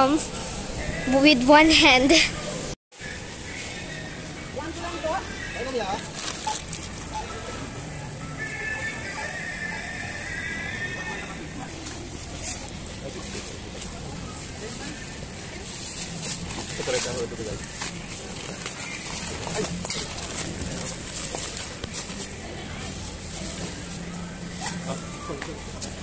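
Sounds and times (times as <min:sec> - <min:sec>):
store chatter: 0:00.0 - 0:26.0
plastic bags rustling and crinkling: 0:05.6 - 0:07.6, 0:11.8 - 0:26.0.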